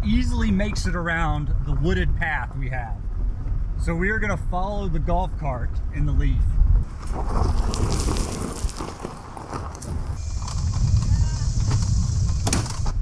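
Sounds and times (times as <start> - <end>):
tyres rumbling over dirt: 6.7 - 13.0
steady high hiss: 10.2 - 13.0.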